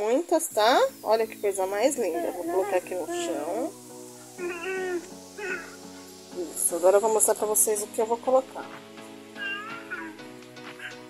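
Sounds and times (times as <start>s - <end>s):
quiet background music: 0.0s - 11.0s
cat meowing: 4.4s - 5.8s, 9.4s - 10.2s.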